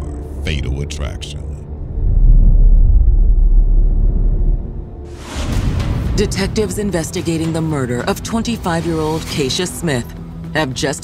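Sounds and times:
deep bass rumble: 1.5 - 7.2.

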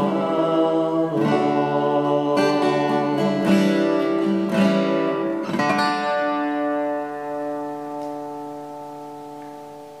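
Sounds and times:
acoustic guitar chord ringing: 0.0 - 10.0.

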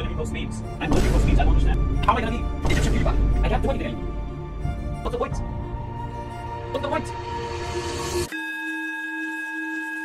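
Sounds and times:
backing music: 0.0 - 8.3
singing bowl ringing: 8.0 - 10.0.

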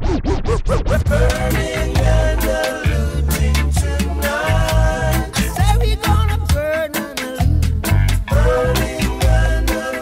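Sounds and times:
turntable scratching: 0.0 - 4.4.

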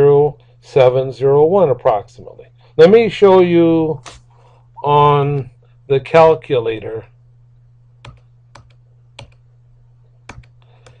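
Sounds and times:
steady low hum: 0.0 - 11.0
keyboard keystrokes: 10.3 - 11.0.

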